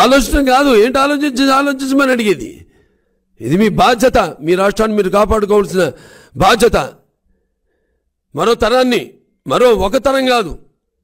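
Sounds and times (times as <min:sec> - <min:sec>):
man speaking into a microphone: 0:00.0 - 0:07.1, 0:08.3 - 0:10.8.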